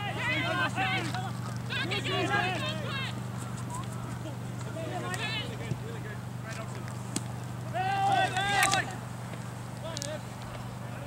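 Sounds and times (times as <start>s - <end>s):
players shouting: 0.0s - 11.0s
steady low hum: 0.0s - 11.0s.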